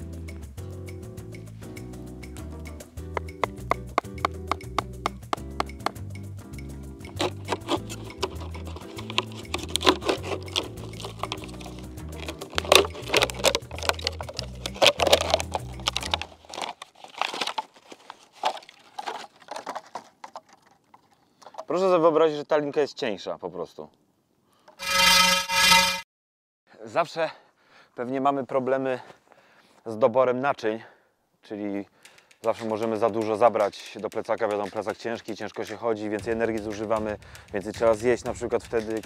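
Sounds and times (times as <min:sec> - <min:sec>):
background music with steady beat: 0:00.0 - 0:16.2, 0:32.8 - 0:39.0
knife cutting plastic bottle: 0:07.0 - 0:20.9.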